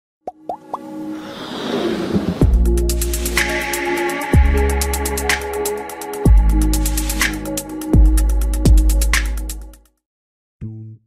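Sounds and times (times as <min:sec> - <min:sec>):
whoosh: 0:00.8 - 0:04.7.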